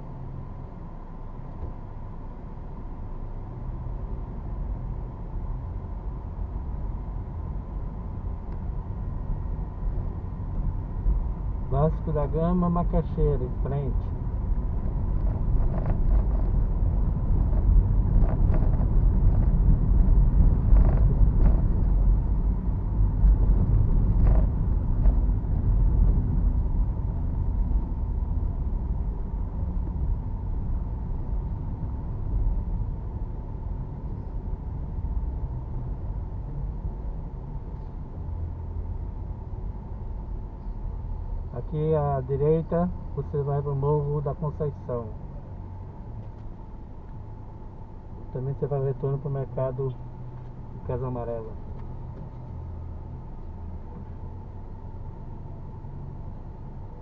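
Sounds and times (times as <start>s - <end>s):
car road rumble inside cabin: 0.0s - 57.0s.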